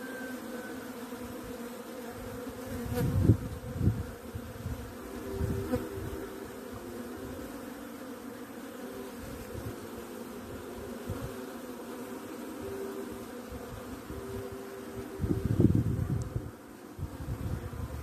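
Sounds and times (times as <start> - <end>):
swarm of bees buzzing: 0.0 - 18.0.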